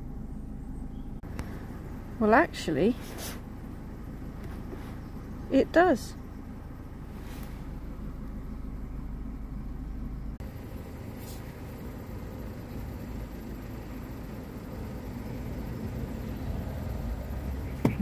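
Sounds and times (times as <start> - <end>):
low background rumble: 0.0 - 18.0.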